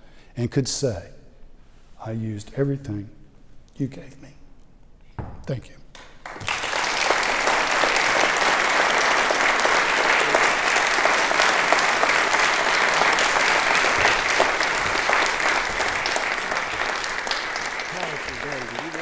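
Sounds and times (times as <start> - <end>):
audience applauding: 6.0 - 19.0.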